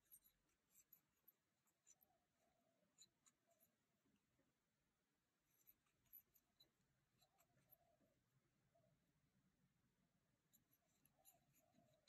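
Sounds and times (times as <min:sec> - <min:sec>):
crochet hook ticks and rustles: 0:00.0 - 0:03.8, 0:05.5 - 0:08.2, 0:10.4 - 0:12.0.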